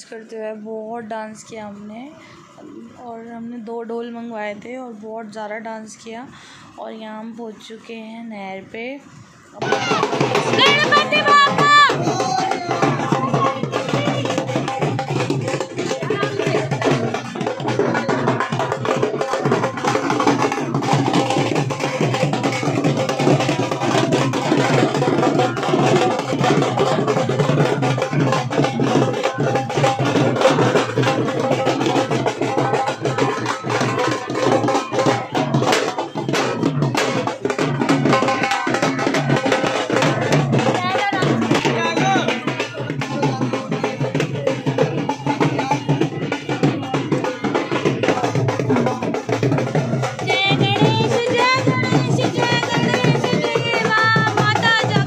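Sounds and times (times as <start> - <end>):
crowd voices: 0.0 - 55.0
drums being beaten: 1.2 - 55.0.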